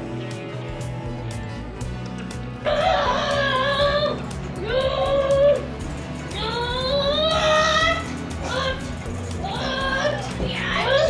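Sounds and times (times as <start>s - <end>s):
background music: 0.0s - 11.0s
excited high-pitched voices shouting: 2.6s - 11.0s.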